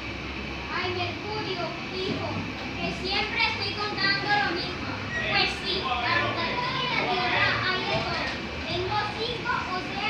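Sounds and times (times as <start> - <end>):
children chattering: 0.7 - 10.0.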